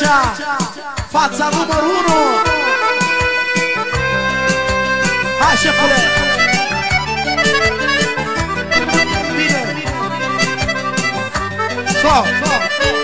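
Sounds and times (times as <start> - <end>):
band playing instrumental music: 0.3 - 13.0.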